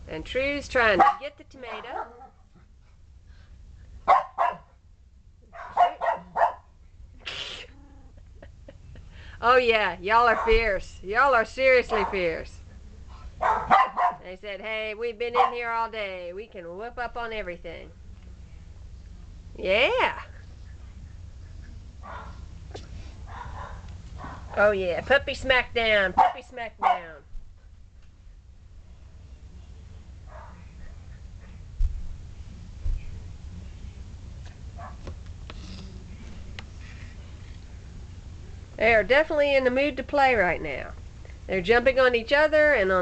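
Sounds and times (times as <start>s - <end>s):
steady low hum: 0.0s - 43.0s
dog barking: 1.0s - 2.4s, 4.1s - 4.7s, 5.5s - 6.7s, 13.4s - 14.2s, 15.4s - 15.6s, 22.0s - 22.4s, 23.3s - 24.5s, 26.2s - 27.1s, 30.3s - 30.6s, 34.8s - 35.0s.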